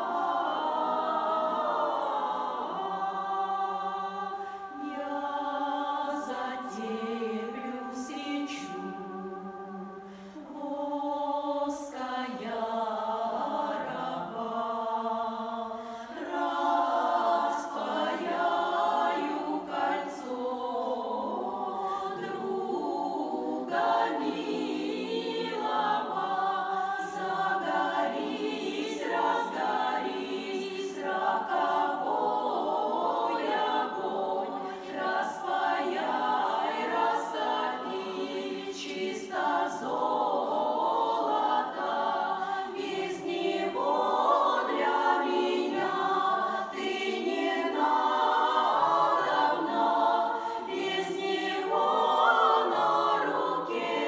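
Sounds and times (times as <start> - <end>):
women's choir singing unaccompanied: 0.0 - 54.0.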